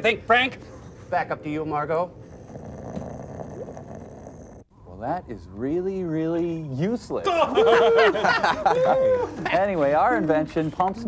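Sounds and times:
man snoring: 0:02.2 - 0:04.7.

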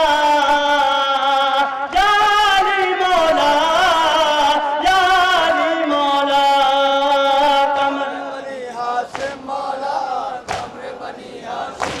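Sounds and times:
men chanting together: 0:07.1 - 0:12.0
chest-beating slaps: 0:09.1 - 0:09.6, 0:10.4 - 0:10.8, 0:11.8 - 0:12.0.

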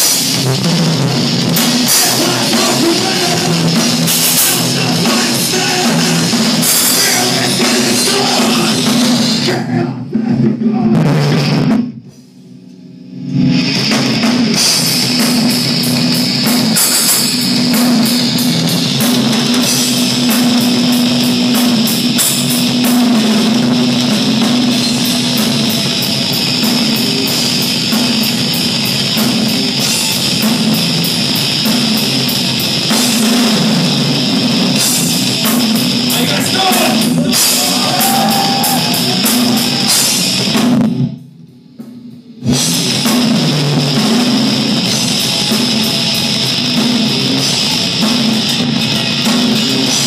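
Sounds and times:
live rock band playing: 0:00.0 - 0:11.9, 0:13.3 - 0:41.2, 0:42.3 - 0:50.0
distorted electric guitar: 0:00.0 - 0:12.0, 0:13.1 - 0:41.2, 0:42.4 - 0:50.0
drum kit with cymbals: 0:00.0 - 0:50.0.

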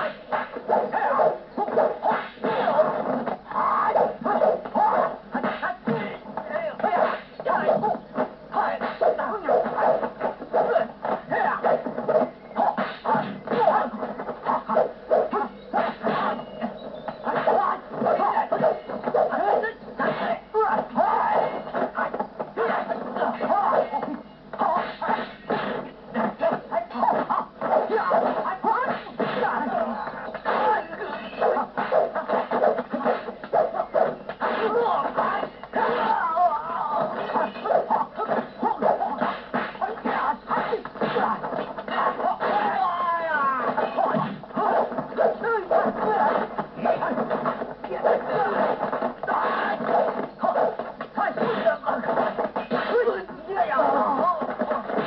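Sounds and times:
fight scene music: 0:00.0 - 0:55.0
voices: 0:00.0 - 0:55.0.

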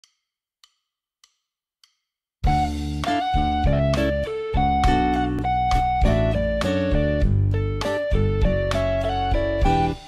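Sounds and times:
background music: 0:02.5 - 0:10.0.

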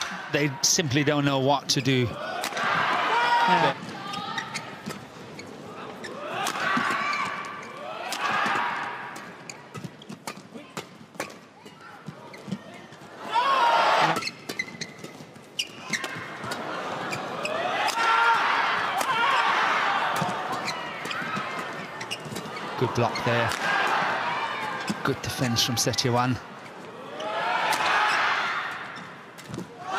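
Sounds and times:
crowd noise: 0:00.0 - 0:29.9
shoe squeaks on court: 0:03.7 - 0:06.1, 0:14.1 - 0:16.3, 0:20.5 - 0:23.5
racket hitting shuttlecock: 0:06.4 - 0:07.1.

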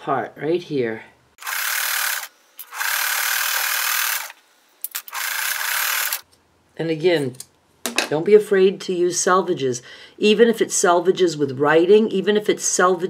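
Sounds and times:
sewing machine stitching: 0:01.4 - 0:06.2.

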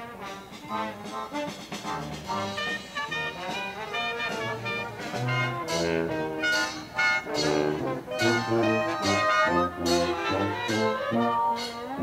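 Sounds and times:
brass jazz band playing: 0:00.0 - 0:12.0
tuba bass notes: 0:00.0 - 0:12.0.

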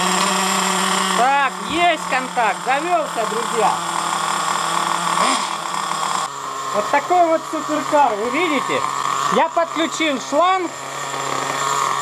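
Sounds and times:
small nitro engine whine: 0:00.0 - 0:12.0.

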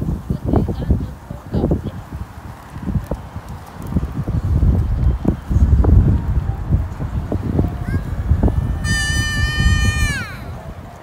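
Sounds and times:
wind on microphone: 0:00.0 - 0:11.0
high voice long call: 0:07.8 - 0:10.6.

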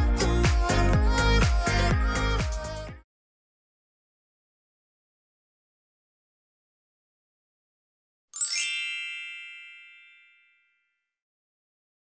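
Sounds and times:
bright chime: 0:08.4 - 0:11.0.

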